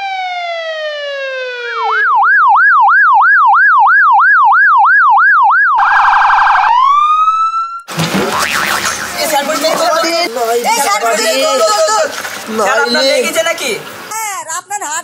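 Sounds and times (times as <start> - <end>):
police siren: 0.0 - 9.2.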